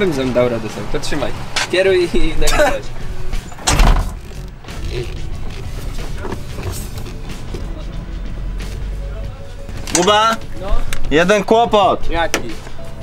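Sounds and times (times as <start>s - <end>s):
car tyres rolling slowly: 0.0s - 11.5s
background music: 0.0s - 13.0s.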